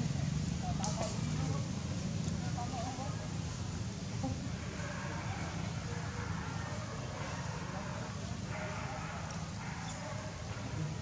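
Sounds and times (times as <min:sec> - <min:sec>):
faint indistinct voices: 0:00.0 - 0:11.0.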